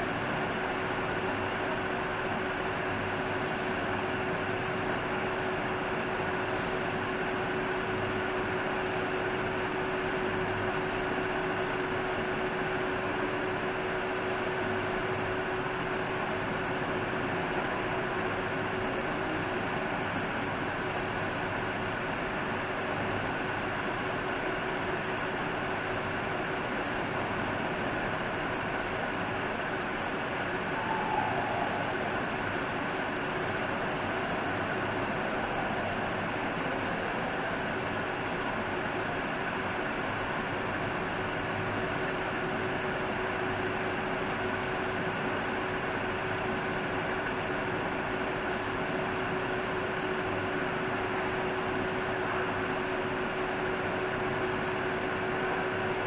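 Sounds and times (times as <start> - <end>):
faint hum: 0.0 - 56.0.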